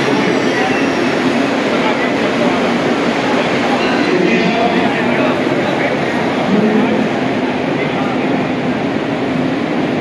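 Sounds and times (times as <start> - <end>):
crowd voices: 0.0 - 10.0
electric train rushing: 0.0 - 10.0.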